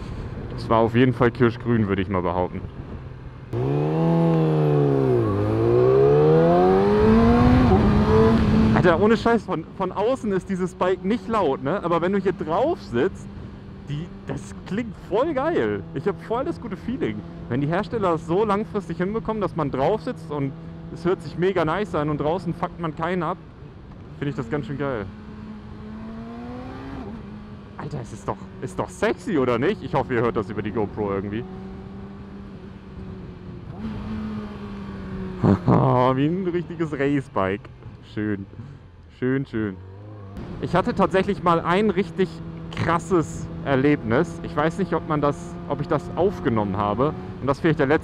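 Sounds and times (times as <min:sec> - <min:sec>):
motorcycle engine accelerating: 0:02.8 - 0:09.5, 0:10.6 - 0:22.8, 0:24.0 - 0:37.9, 0:39.7 - 0:48.0.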